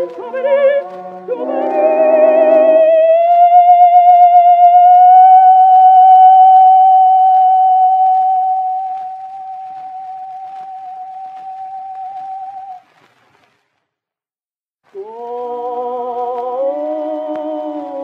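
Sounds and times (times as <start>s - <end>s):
operatic singer holding high note: 0.0s - 12.7s.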